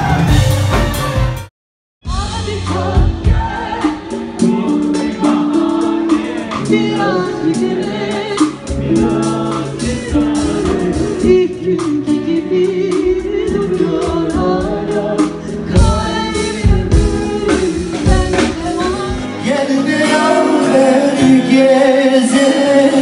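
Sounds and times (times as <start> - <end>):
steady drum beat: 0.0 - 21.4
band playing: 0.0 - 23.0
woman singing into microphone: 2.1 - 23.0.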